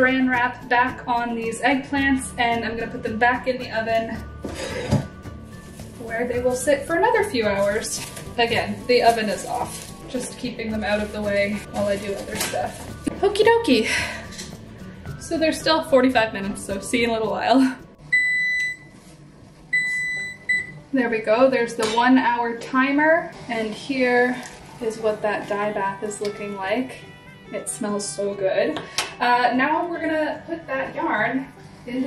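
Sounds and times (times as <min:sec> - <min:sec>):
quiet background music: 0:00.0 - 0:32.0
plastic wrap crinkling: 0:05.6 - 0:12.8
stove timer beeping: 0:18.1 - 0:18.9, 0:19.7 - 0:20.8.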